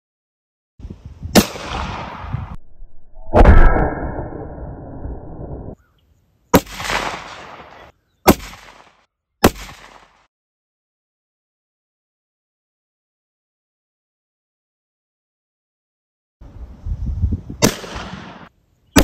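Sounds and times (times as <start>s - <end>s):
pistol shots: 6.5s - 10.2s.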